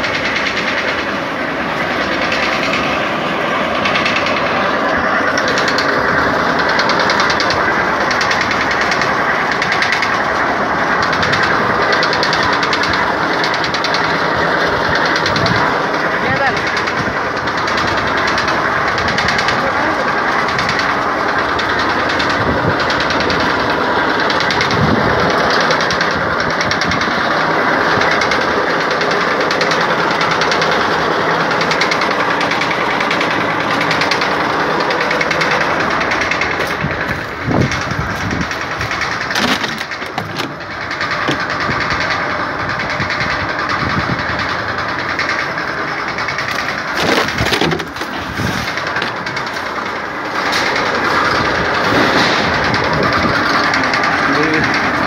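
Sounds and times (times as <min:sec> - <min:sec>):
flywheel machine clattering: 0:00.0 - 0:55.0.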